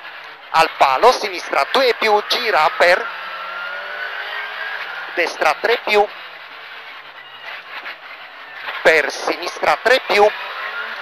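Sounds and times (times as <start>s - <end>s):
road noise: 0.0s - 11.0s.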